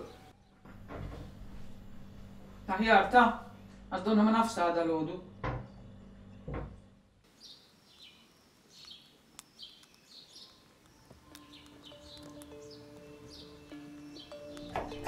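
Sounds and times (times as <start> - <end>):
soft held music notes: 10.4 - 15.0.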